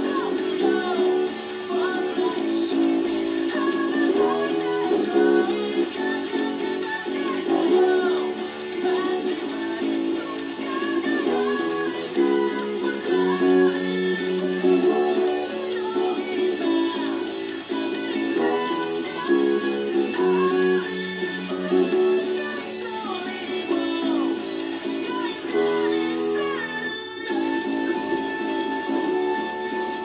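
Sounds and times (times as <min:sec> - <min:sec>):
song over loudspeaker: 0:00.0 - 0:30.0.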